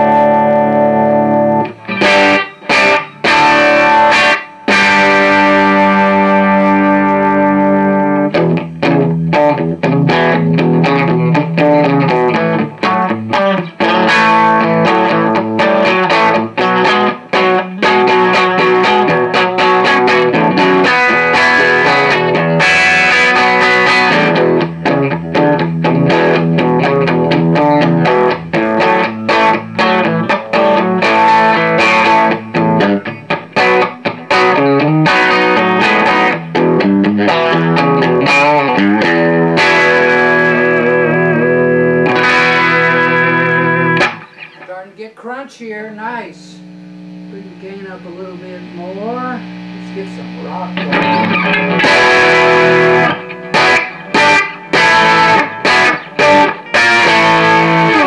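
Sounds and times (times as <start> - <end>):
overdriven electric guitar: 0.0 - 58.0.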